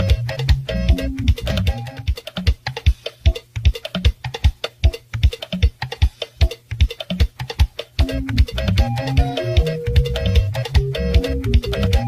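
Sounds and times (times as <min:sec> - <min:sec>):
drums playing a quick beat: 0:00.0 - 0:12.0.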